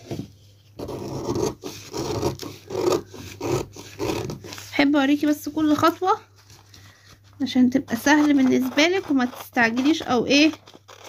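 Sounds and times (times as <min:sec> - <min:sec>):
scissors cutting paper: 0:00.8 - 0:06.0, 0:07.8 - 0:11.0.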